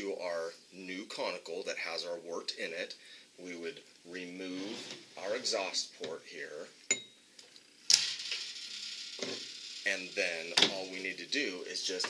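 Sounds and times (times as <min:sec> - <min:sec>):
steady gas hiss: 0:02.8 - 0:12.0.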